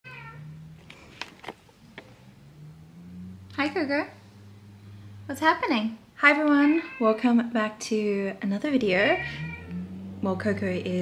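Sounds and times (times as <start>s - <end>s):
cat meowing: 0.1s - 0.7s, 6.6s - 7.3s, 9.0s - 10.2s.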